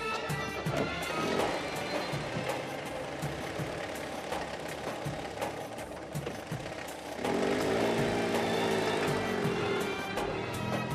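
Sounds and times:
car engines pulling away: 0:00.2 - 0:10.9
knocking clatter: 0:02.2 - 0:07.1.

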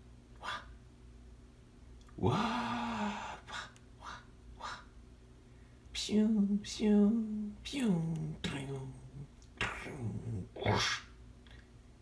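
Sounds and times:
man growling sound effect: 0:02.2 - 0:03.6
breathy hissing mouth sound: 0:02.3 - 0:04.9.

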